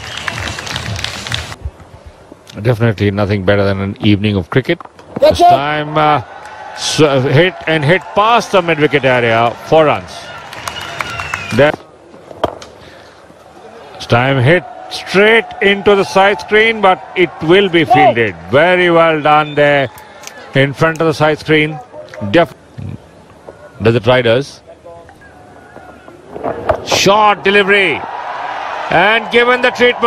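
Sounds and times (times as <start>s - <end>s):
stadium crowd noise: 0.0s - 2.0s, 5.1s - 30.0s
bat striking ball: 12.4s - 12.7s.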